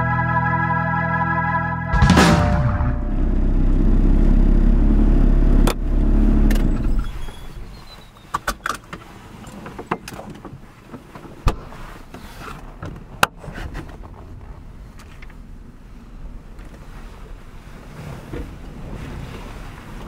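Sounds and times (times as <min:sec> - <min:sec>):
musical hit: 0:00.0 - 0:04.1
old car engine rumbling: 0:01.9 - 0:07.8.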